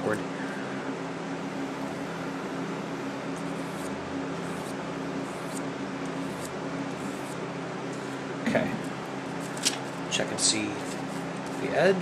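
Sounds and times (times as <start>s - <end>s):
box fan humming: 0.0s - 12.0s
knife blade scraping sharpener: 3.3s - 7.4s.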